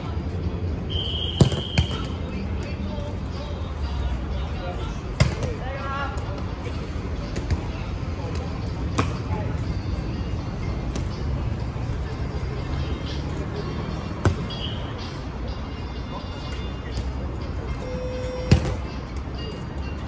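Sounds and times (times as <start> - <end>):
balls thudding on court: 1.4 - 2.1, 5.2 - 5.6, 18.5 - 18.8.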